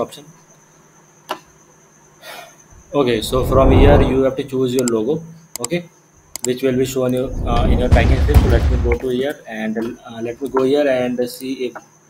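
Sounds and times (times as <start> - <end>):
background hiss: 0.0 - 12.0
high thin whine: 2.9 - 4.4
computer mouse click: 5.6 - 5.8.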